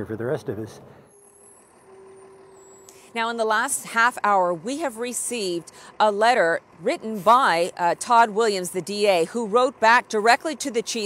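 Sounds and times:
low hum of traffic: 0:00.0 - 0:11.0.

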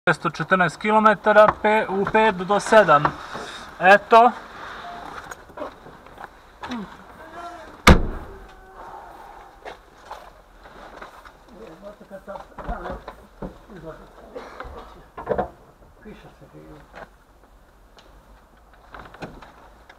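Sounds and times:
sharp thump: 0:07.8 - 0:08.4.

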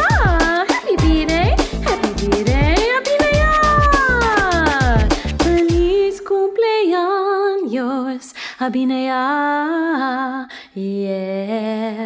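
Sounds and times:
birthday tune backing track: 0:00.0 - 0:06.0.

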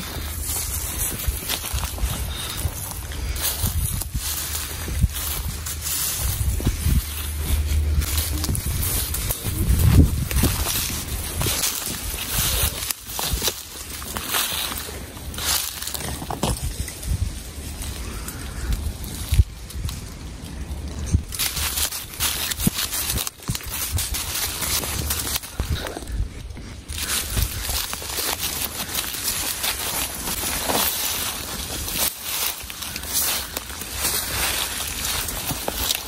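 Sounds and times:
low steady rumble: 0:00.0 - 0:12.9, 0:13.6 - 0:36.0
footsteps through dry leaves: 0:00.0 - 0:36.0
twigs rustling and crackling: 0:00.0 - 0:36.0.

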